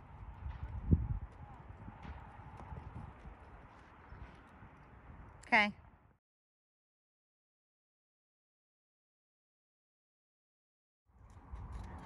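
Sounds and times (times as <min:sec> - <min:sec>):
hooves on soft dirt: 0:00.0 - 0:05.4, 0:11.2 - 0:12.0.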